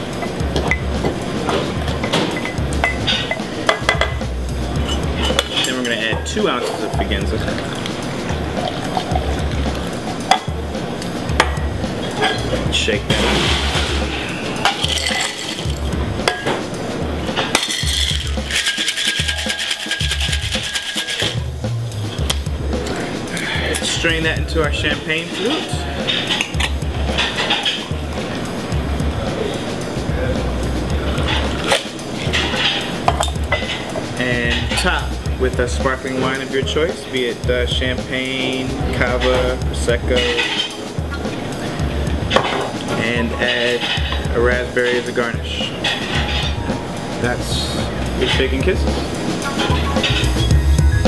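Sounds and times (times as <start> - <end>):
background music: 0.0 - 51.0
cocktail shaker clinking on glass: 14.6 - 16.5, 17.4 - 21.4.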